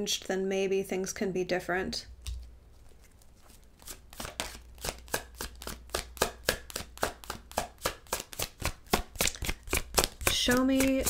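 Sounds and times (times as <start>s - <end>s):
cards being handled: 2.2s - 11.0s
cards being shuffled: 2.2s - 11.0s.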